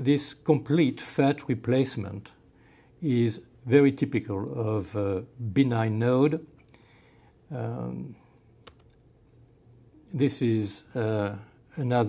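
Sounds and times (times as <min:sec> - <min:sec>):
low steady hum: 0:00.0 - 0:12.0
computer key clicks: 0:08.6 - 0:09.0.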